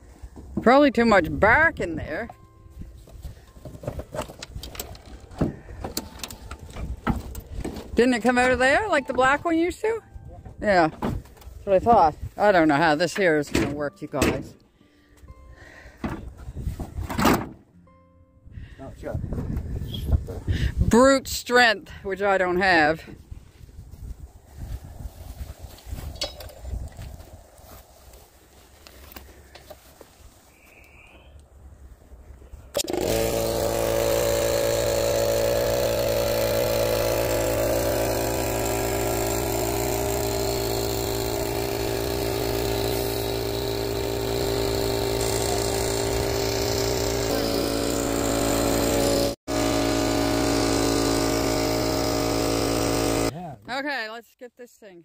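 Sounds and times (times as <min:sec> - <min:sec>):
air compressor humming: 0:03.0 - 0:09.4, 0:32.7 - 0:53.3.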